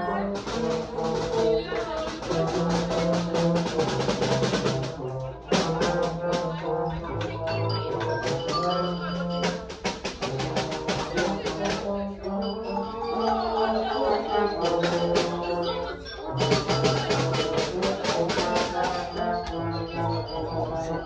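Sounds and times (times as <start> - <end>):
music with bass line: 0.0 - 21.0.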